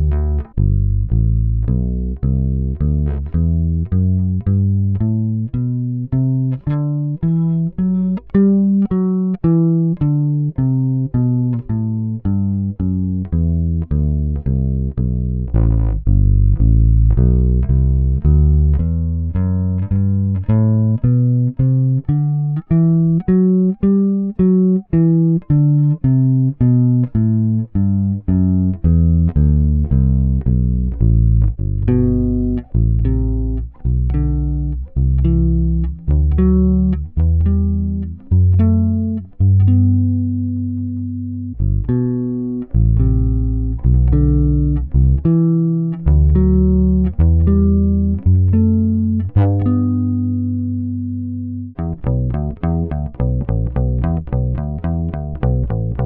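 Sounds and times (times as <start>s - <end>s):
plucked bass guitar riff: 0.0s - 56.0s.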